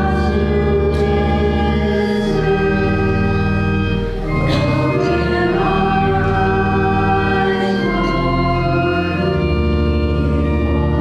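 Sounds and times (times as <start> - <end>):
choir singing a hymn: 0.0 - 11.0
organ chords: 0.0 - 11.0.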